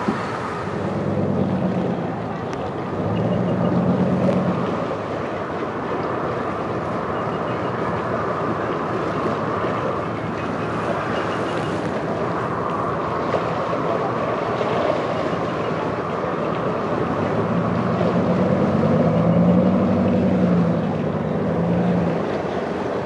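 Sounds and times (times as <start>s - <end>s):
boat engine running: 0.0s - 23.0s.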